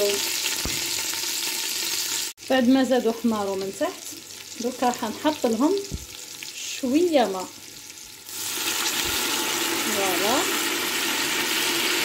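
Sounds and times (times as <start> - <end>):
water pouring into pot: 8.2 - 12.0.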